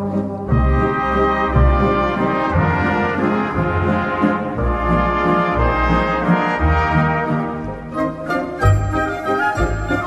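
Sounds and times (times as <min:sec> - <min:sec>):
brass music with bass line: 0:00.0 - 0:10.0.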